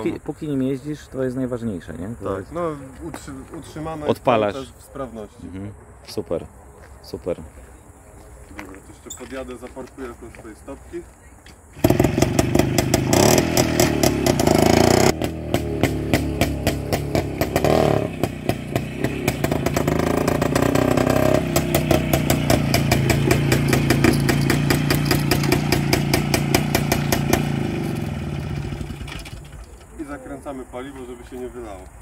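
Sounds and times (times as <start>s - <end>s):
motorcycle engine revving: 11.8s - 29.6s.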